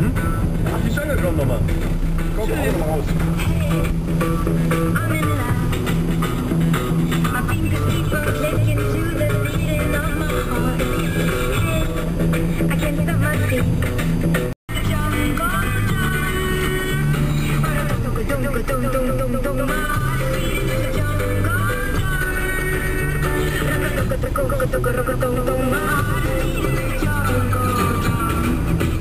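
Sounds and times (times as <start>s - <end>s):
song on car radio: 0.0s - 29.0s.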